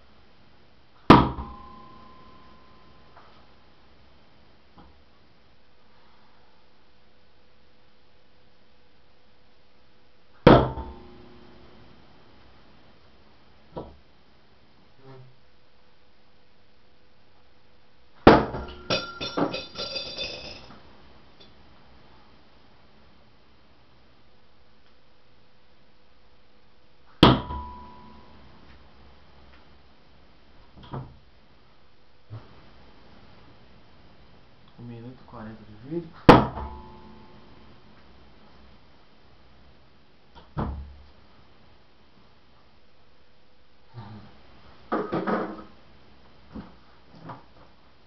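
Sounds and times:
metal clattering on floor: 0:18.4 - 0:20.8.

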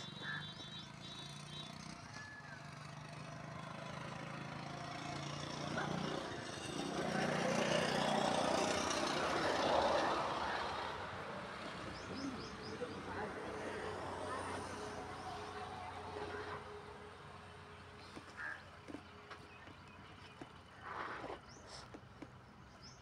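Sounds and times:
vehicle engine humming: 0:00.0 - 0:23.0.

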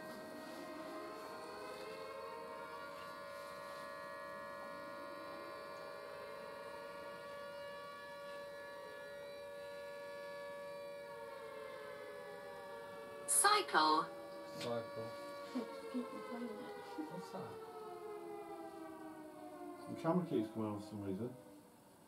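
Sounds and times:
electronic hum of held tones: 0:00.0 - 0:10.5.

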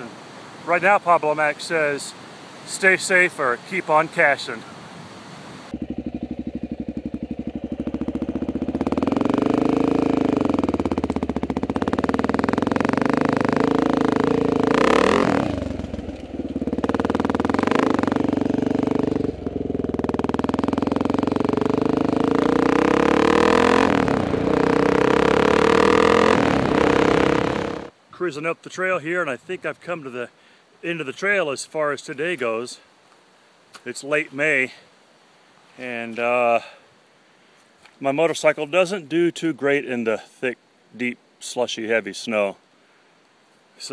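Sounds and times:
motorcycle engine revving: 0:05.7 - 0:27.9.

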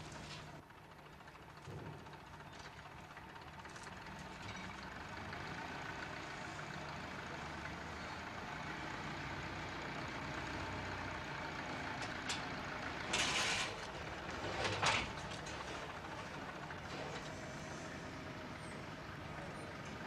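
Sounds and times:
forklift engine running: 0:00.0 - 0:20.0.

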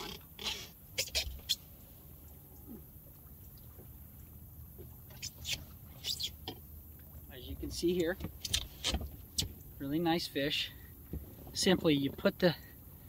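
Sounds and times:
faint low rumble: 0:01.6 - 0:06.0.

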